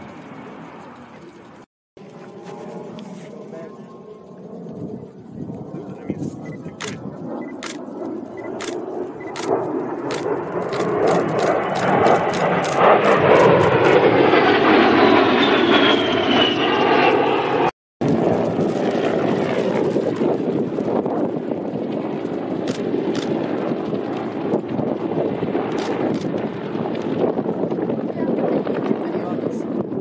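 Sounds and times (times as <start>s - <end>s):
jet engine flyby: 0.0s - 30.0s.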